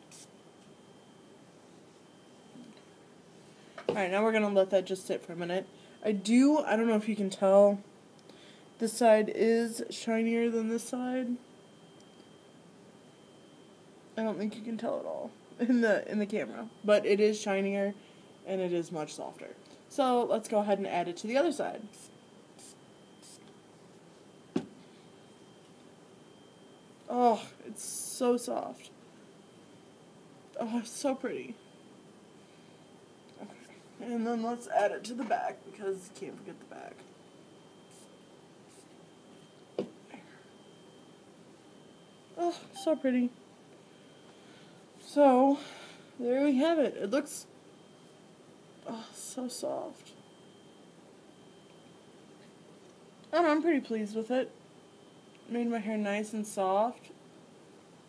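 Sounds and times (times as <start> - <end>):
hair spray hissing: 22.0 - 23.5
thin high-pitched tone: 42.4 - 43.3.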